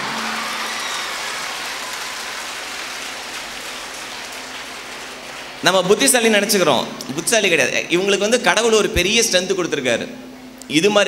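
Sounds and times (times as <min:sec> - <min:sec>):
audience applauding: 0:00.0 - 0:08.0.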